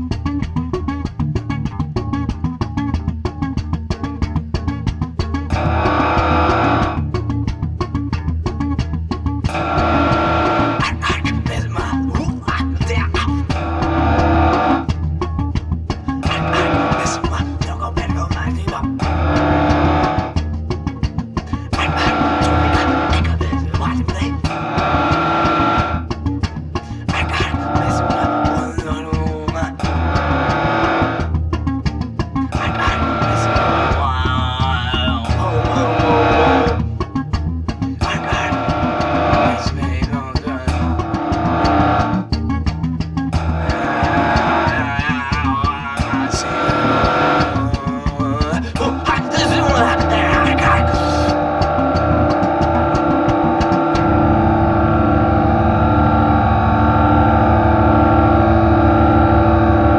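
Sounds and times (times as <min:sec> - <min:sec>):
guitars: 0:00.0 - 0:59.9
heavy bass: 0:00.0 - 0:59.9.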